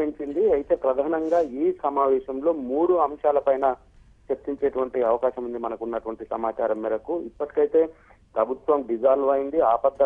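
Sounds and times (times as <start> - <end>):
person narrating news report: 0.0 - 10.0.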